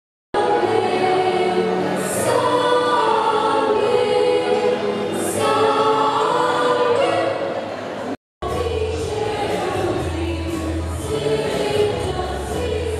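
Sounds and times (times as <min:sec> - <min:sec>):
choir singing a hymn: 0:00.4 - 0:12.9.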